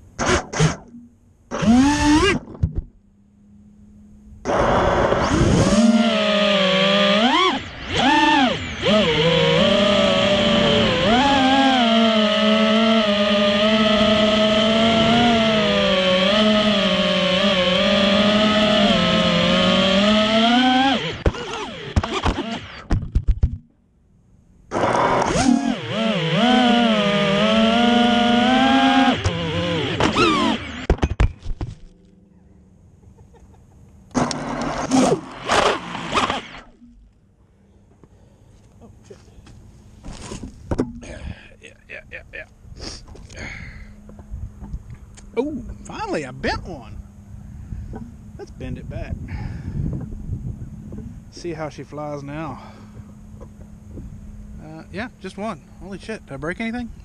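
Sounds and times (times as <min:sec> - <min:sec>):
quadcopter motors whining: 0:00.2 - 0:02.7, 0:04.4 - 0:23.0, 0:24.7 - 0:31.0, 0:33.9 - 0:37.0, 0:41.8 - 0:57.0.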